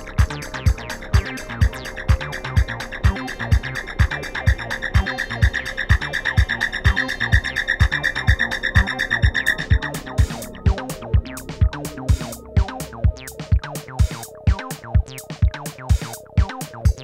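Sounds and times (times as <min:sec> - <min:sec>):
pulsing high synth tone: 0:00.0 - 0:15.9
drum machine kick: 0:00.0 - 0:17.0
ticking hi-hats: 0:00.0 - 0:17.0.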